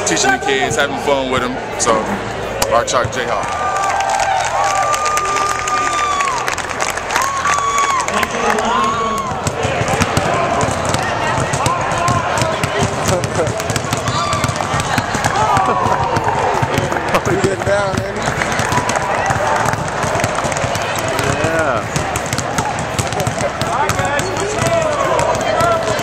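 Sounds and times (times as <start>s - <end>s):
crowd voices and calls: 0.0s - 26.0s
basketballs bouncing on hardwood floor: 8.7s - 26.0s.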